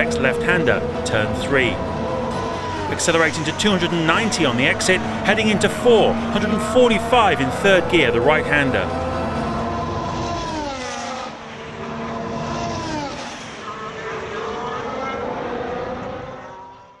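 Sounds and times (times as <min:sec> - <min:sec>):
racing car engine running hard: 0:00.0 - 0:16.9.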